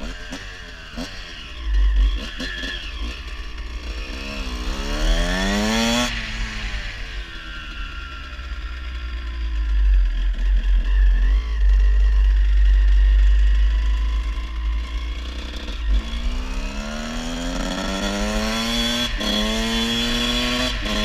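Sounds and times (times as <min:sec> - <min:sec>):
dirt bike engine revving: 0:00.0 - 0:08.4, 0:10.4 - 0:21.0.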